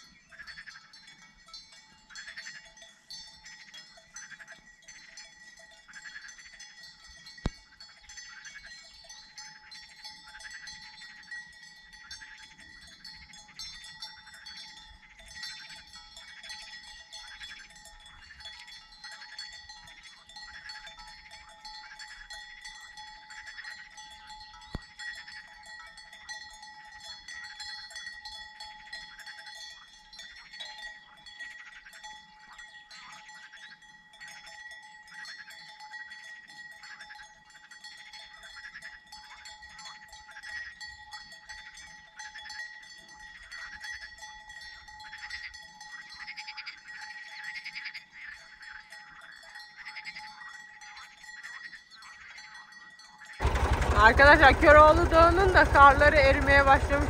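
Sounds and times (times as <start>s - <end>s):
livestock bells clanking: 0.0s - 57.0s.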